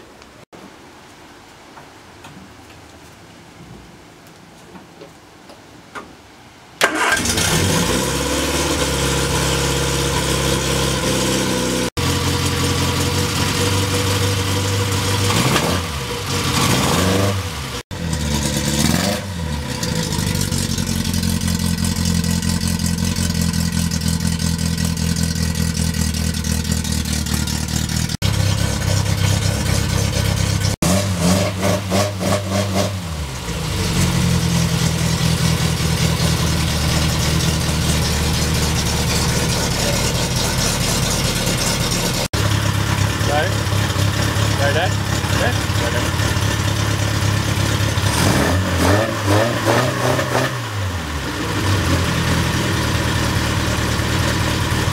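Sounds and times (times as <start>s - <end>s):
car engine revving: 6.8s - 54.9s.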